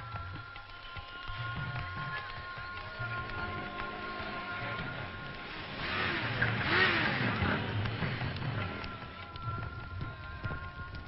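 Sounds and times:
motorcycle engines revving past: 0:03.1 - 0:09.8.

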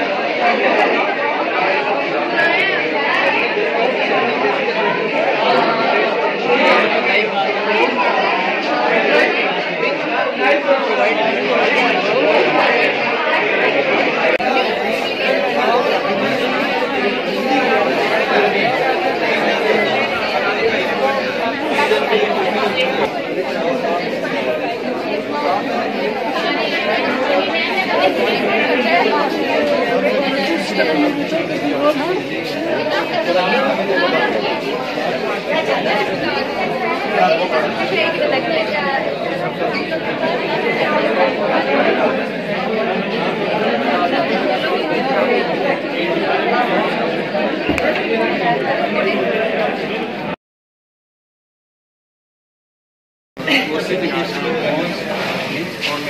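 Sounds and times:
crowd chatter in a large hall: 0:00.0 - 0:50.4, 0:53.4 - 0:56.0.

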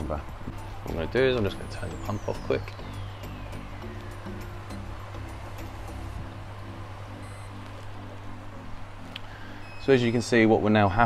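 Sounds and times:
steady low hum: 0:00.0 - 0:10.0
quiet background music: 0:00.0 - 0:11.0
pump whine winding down: 0:00.3 - 0:08.4.

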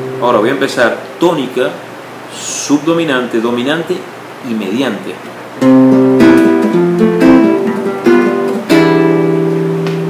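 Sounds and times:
classical guitar strumming chords: 0:00.0 - 0:01.8, 0:05.6 - 0:10.0.

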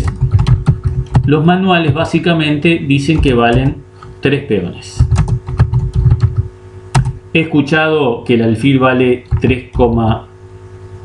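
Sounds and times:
keyboard typing clicks: 0:00.0 - 0:01.4, 0:03.1 - 0:03.8, 0:05.0 - 0:07.2, 0:09.3 - 0:10.1.

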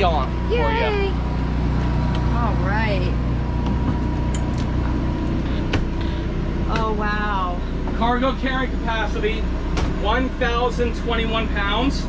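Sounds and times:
air conditioner humming: 0:00.0 - 0:12.0.

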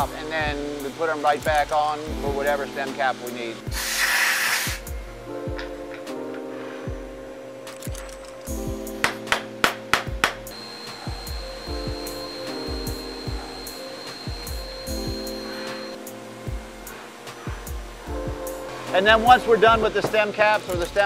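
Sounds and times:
background music: 0:00.0 - 0:21.0
hammer tapping metal: 0:09.0 - 0:11.2
milling machine cutting: 0:10.2 - 0:18.0.

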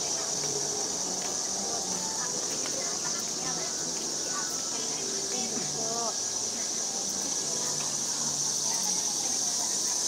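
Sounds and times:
people talking faintly: 0:00.0 - 0:10.0.

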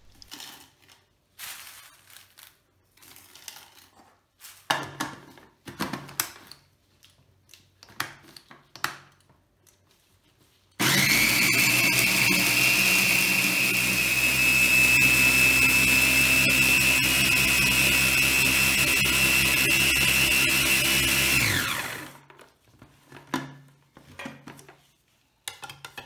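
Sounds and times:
electric chopper grinding chillies: 0:10.8 - 0:22.2.

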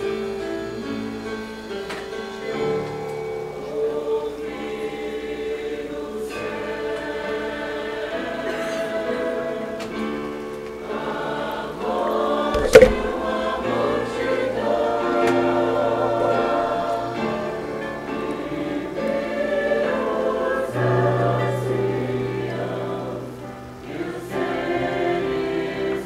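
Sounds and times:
congregation singing a hymn: 0:00.0 - 0:26.0
sharp pop: 0:12.6 - 0:13.4.

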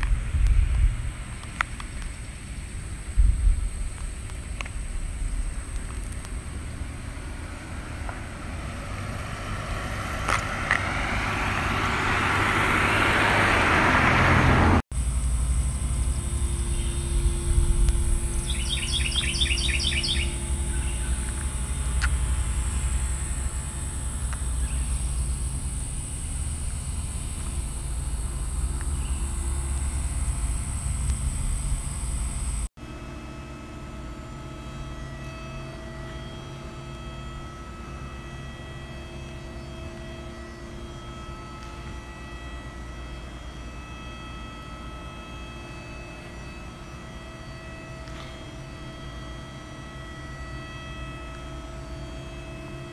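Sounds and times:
low rumble: 0:00.0 - 0:32.7
faint hum: 0:00.0 - 0:52.9
high-pitched insect drone: 0:00.0 - 0:52.9
rapid bird call: 0:18.4 - 0:21.3.

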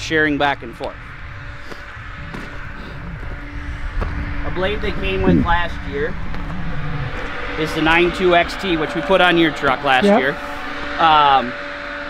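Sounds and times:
low rumble: 0:00.0 - 0:12.0.

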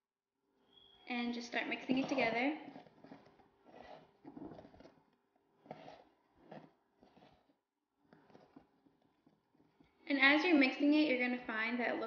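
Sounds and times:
wooden spoon stirring in glass bowl: 0:01.6 - 0:10.1.

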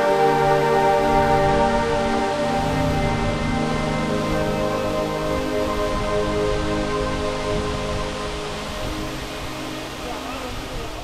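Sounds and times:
falling water rushing: 0:00.0 - 0:11.0
slow held music chords: 0:00.0 - 0:11.0.

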